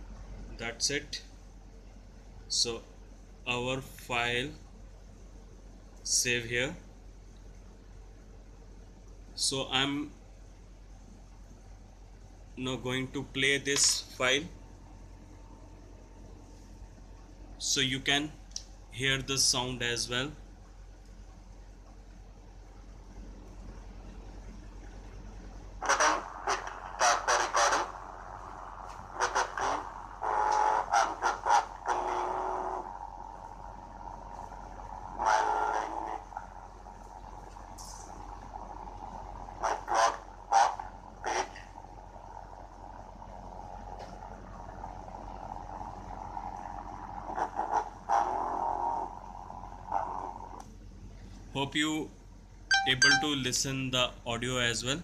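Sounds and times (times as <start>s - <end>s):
steady hum: 0.0s - 55.0s.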